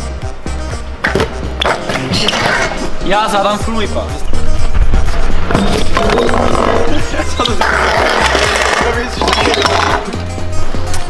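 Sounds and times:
background music with steady beat: 0.0 - 11.0
scooter wheels rolling: 5.2 - 10.1.

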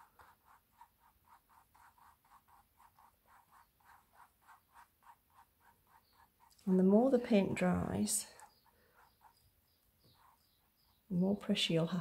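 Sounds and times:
brush swishing on canvas: 0.0 - 6.8.

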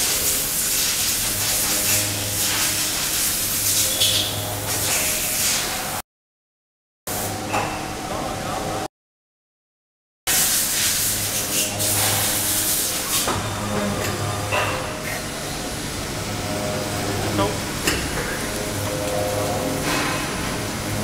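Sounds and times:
milling machine humming: 0.0 - 5.4, 11.1 - 21.0
loud hiss: 10.3 - 13.3.

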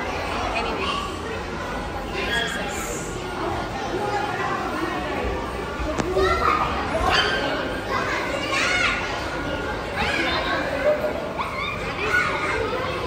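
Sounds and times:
children playing and talking: 0.0 - 13.0
crowd chatter: 0.0 - 13.0
high-pitched children's calls: 6.0 - 13.0.

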